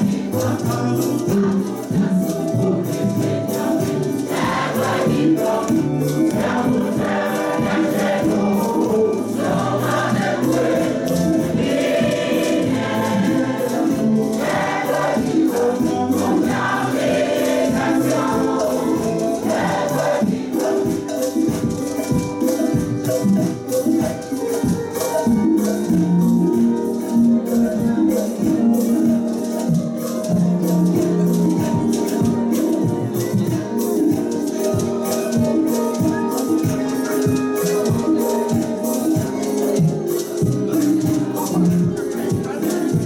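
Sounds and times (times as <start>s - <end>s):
choir singing gospel song: 0.0s - 43.0s
hand percussion beat: 0.0s - 43.0s.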